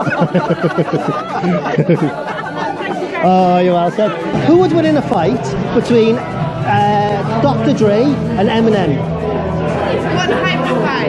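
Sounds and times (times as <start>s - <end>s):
laughter: 0.0s - 3.0s
people talking: 0.0s - 9.1s.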